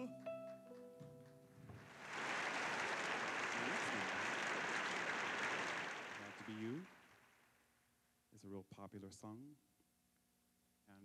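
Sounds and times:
audience applauding: 1.8s - 7.4s.

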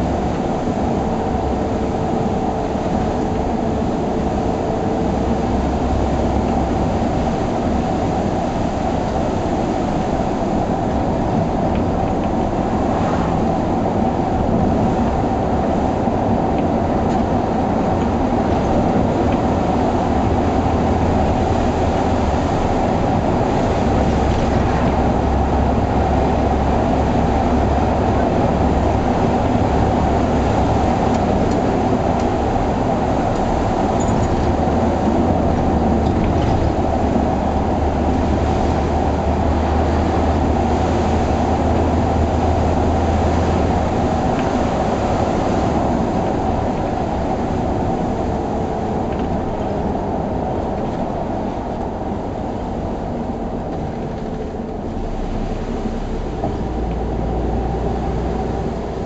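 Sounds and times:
bus diesel engine drone: 0.0s - 59.0s
tyre and road noise: 0.0s - 59.0s.

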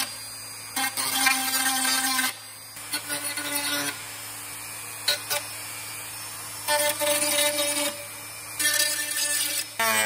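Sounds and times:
rotary tool whining: 0.0s - 10.0s
grinding stone rasping on plastic: 8.6s - 10.0s.

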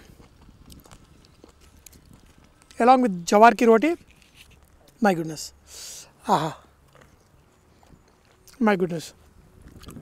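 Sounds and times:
faint chewing: 0.0s - 2.8s, 6.7s - 10.0s
man saying aha: 6.2s - 6.7s.

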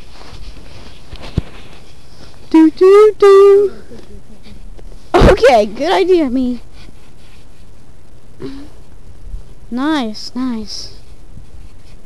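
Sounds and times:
rustling on microphone: 0.0s - 12.0s.

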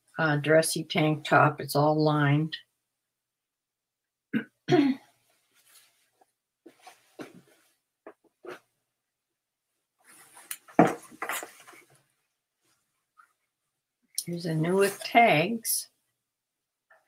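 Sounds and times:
woman coughing: 4.4s - 5.1s
clothing rustling: 5.2s - 8.7s, 10.0s - 13.7s.

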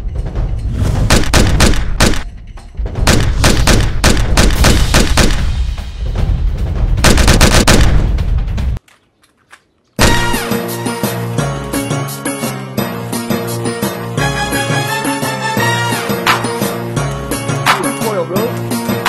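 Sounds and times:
gunfire volleys: 1.0s - 2.3s, 3.0s - 5.6s, 7.0s - 8.1s
heavy music track: 10.0s - 19.0s.

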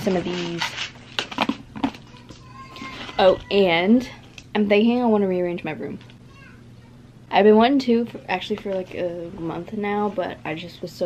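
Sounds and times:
plastic container clicks and rustles: 0.4s - 2.4s.

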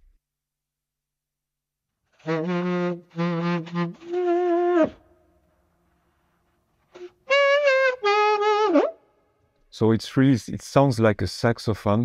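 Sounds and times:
synthesized saxophone phrases: 2.2s - 5.1s, 7.0s - 9.0s.

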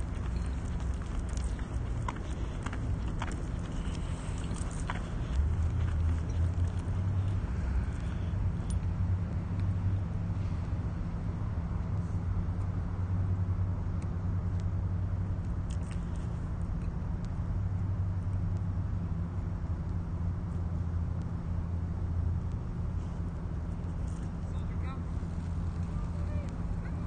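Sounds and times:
low mechanical hum: 0.0s - 27.0s.

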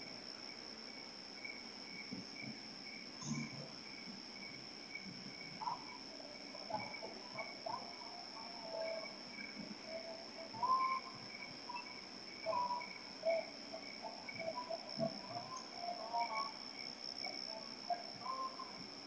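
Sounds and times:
crickets trilling: 0.0s - 19.0s
short low insect calls: 0.0s - 19.0s.

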